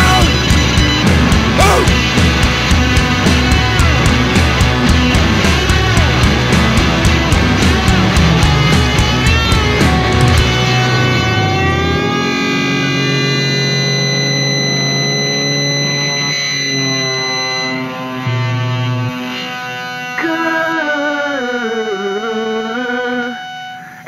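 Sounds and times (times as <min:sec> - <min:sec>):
long held chords: 0:00.0 - 0:24.0
wavering melody with vibrato: 0:08.0 - 0:24.0.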